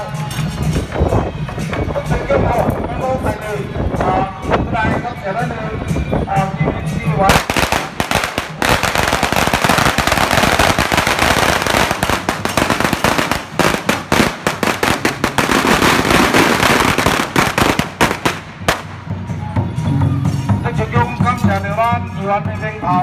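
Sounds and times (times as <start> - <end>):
firecrackers crackling: 7.3 - 19.2.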